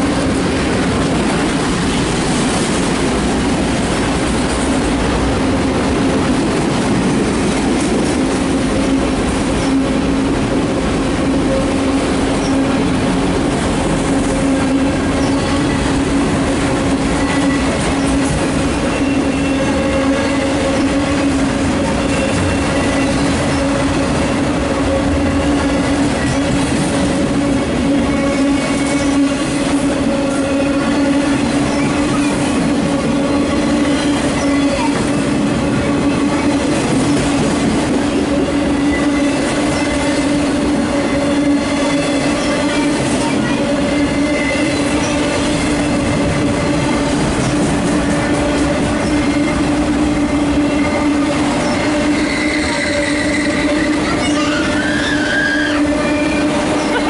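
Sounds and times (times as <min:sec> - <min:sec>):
freight train wheels rumbling: 0:00.0 - 0:57.0.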